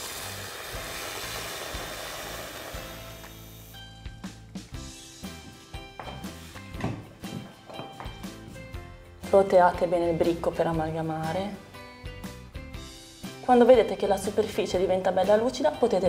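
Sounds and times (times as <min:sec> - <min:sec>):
milk frother whirring: 0:00.0 - 0:03.6
background music: 0:00.0 - 0:16.0.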